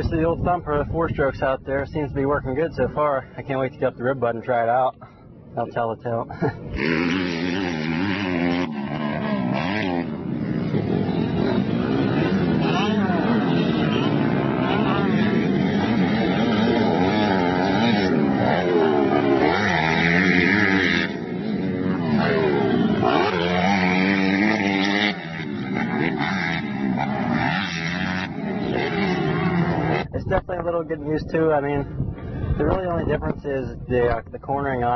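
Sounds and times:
motocross bike engine revving: 6.2 - 33.3.

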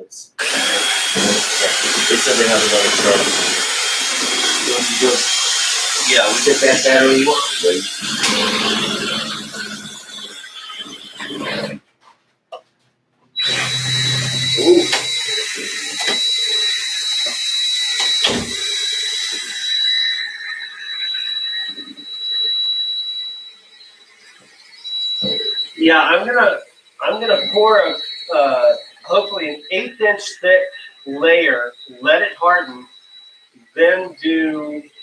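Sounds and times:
cordless drill motor whining: 0.4 - 11.8, 13.4 - 30.0, 30.6 - 35.0.

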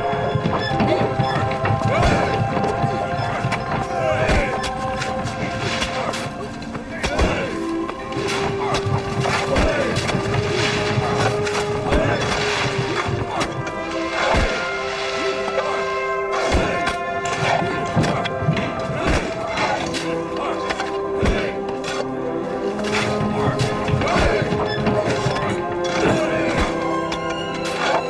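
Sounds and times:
background score with held notes: 0.0 - 28.0
shovels and pickaxes striking earth: 4.1 - 14.9, 16.4 - 18.2, 19.0 - 22.1.

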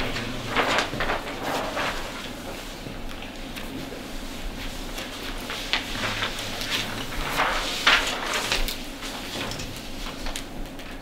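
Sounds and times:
paper sheets rustling: 0.0 - 11.0.

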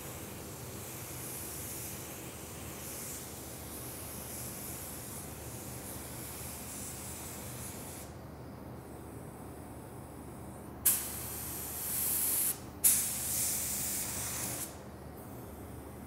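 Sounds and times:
paint spray gun hissing: 0.0 - 8.1, 10.9 - 14.8.

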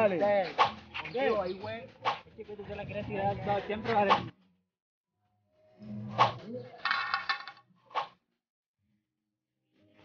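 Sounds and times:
wooden pole clattering: 6.8 - 7.6.

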